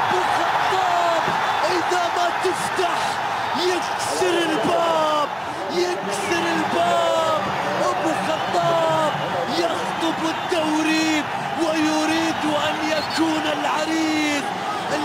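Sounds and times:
commentator shouting: 0:00.0 - 0:15.0
stadium crowd celebrating: 0:00.0 - 0:15.0.

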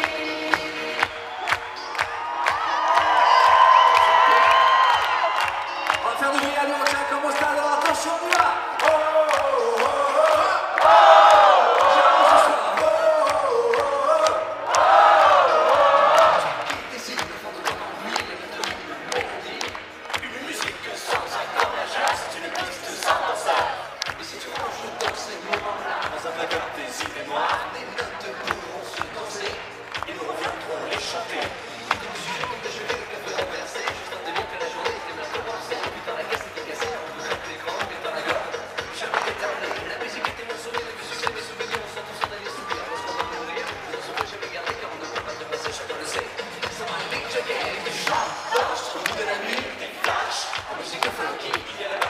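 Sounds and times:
singers and crowd singing: 0:00.0 - 0:02.0, 0:06.0 - 0:52.0
dance-pop music with beat: 0:00.0 - 0:52.0.

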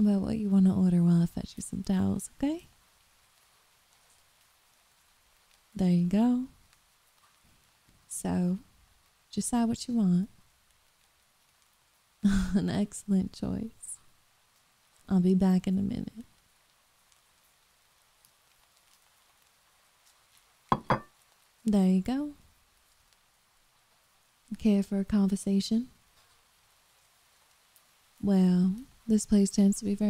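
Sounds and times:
faint hiss of rain: 0:00.0 - 0:30.0.

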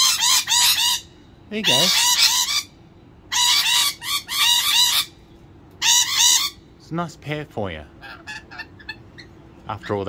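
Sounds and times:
lorikeets screeching: 0:00.0 - 0:06.8, 0:07.9 - 0:10.0.

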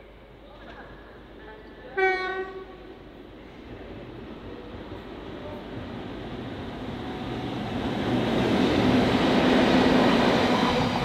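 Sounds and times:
freight train running: 0:00.0 - 0:11.0
locomotive horn blast: 0:02.0 - 0:02.8.

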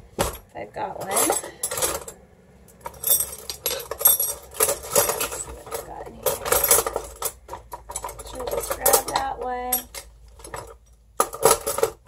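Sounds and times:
metal utensils clinking: 0:01.0 - 0:12.0.

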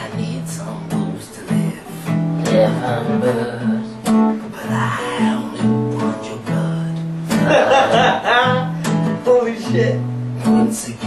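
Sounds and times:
person singing: 0:00.0 - 0:09.4, 0:10.4 - 0:11.0
acoustic guitar strumming: 0:00.0 - 0:11.0.

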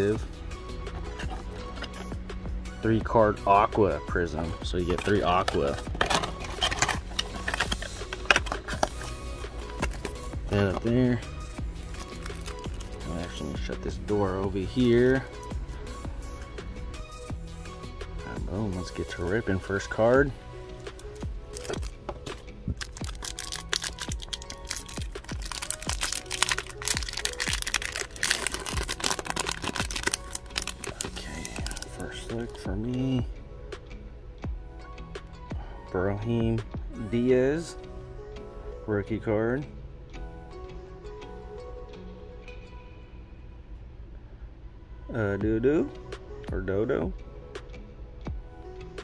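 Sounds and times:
background music: 0:00.0 - 0:49.0
packaging crinkling and clicking: 0:04.9 - 0:10.2, 0:12.0 - 0:13.0, 0:21.0 - 0:32.0.

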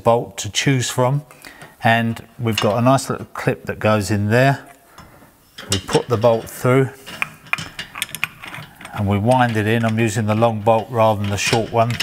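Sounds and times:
bolt threads clicking against metal: 0:05.6 - 0:12.0.

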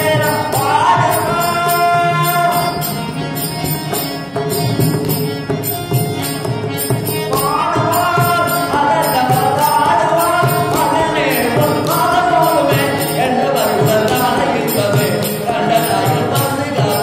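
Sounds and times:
man singing: 0:00.0 - 0:03.2, 0:07.0 - 0:17.0
harmonium drone and melody: 0:00.0 - 0:17.0
metallic jingling beat: 0:00.0 - 0:17.0.

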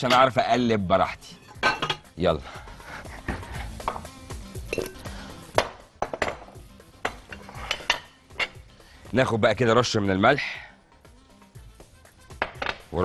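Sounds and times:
glass bowls and utensils clinking: 0:00.0 - 0:00.4, 0:01.2 - 0:02.2, 0:03.9 - 0:05.1, 0:07.0 - 0:08.6
soft background music: 0:00.0 - 0:13.0.

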